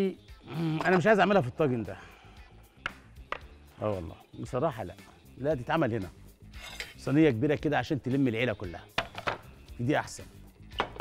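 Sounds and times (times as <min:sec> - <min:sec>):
faint background music: 0:00.0 - 0:11.0
kitchenware clinking: 0:06.6 - 0:07.1.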